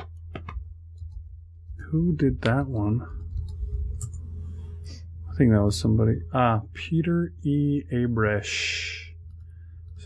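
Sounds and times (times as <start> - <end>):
low electrical hum: 0.0 - 10.0
man speaking: 1.8 - 3.2, 5.3 - 9.1.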